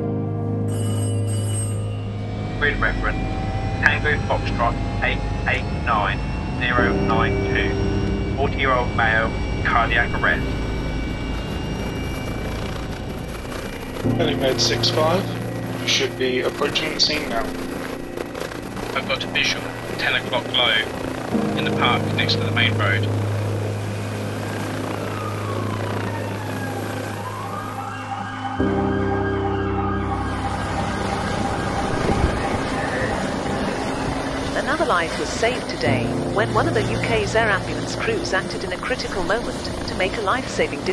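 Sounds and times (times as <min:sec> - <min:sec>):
siren wailing: 0:02.1 - 0:40.9
steady engine drone: 0:02.1 - 0:40.9
helicopter rotor and turbine: 0:02.2 - 0:28.9, 0:30.1 - 0:40.9.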